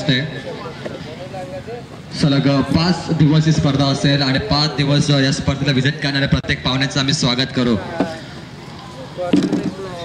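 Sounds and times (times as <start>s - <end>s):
open-air background noise: 0.0s - 10.0s.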